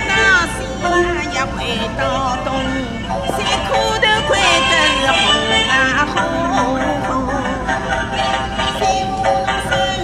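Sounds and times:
traditional instrumental accompaniment: 0.0 - 10.0
woman singing opera: 0.0 - 10.0.

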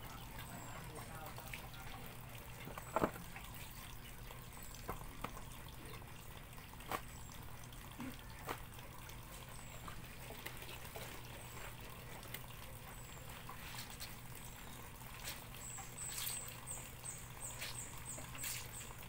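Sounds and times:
water sloshing and dripping: 0.0 - 19.0.

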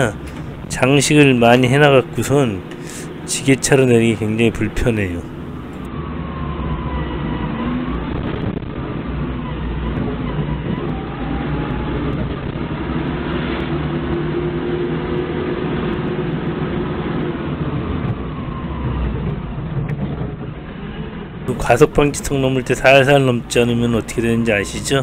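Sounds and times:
forklift engine running: 0.0 - 5.9.

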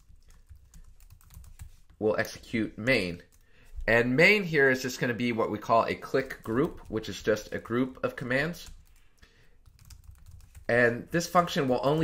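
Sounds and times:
computer keyboard typing: 0.0 - 2.0, 6.0 - 12.0.

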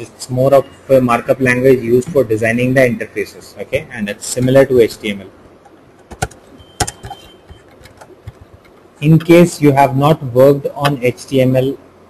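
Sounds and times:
computer keyboard typing: 6.0 - 9.4.

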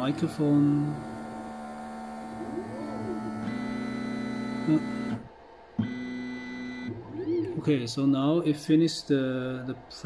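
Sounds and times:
stepper motors whining: 0.0 - 7.4.

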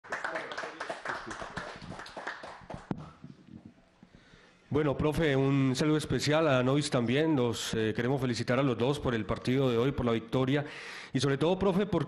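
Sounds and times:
hands clapping in applause: 0.0 - 3.2.

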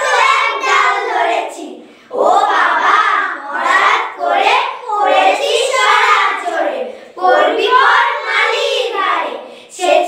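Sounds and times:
girls reciting in unison: 0.0 - 10.0.

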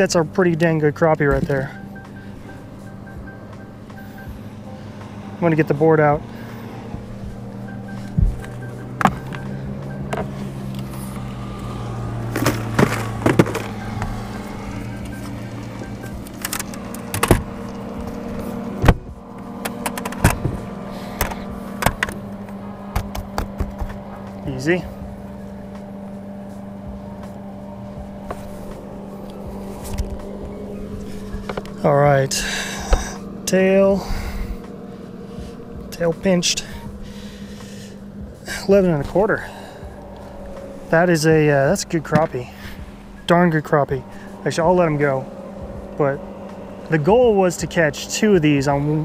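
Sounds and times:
steady low hum: 0.0 - 49.0
knocks and clicks on boat deck: 21.2 - 24.0.

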